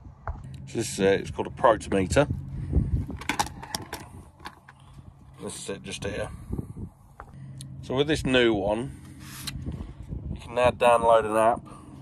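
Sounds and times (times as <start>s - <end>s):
steady low hum: 0.0s - 12.0s
plastic case clicks and rattles: 3.2s - 4.7s.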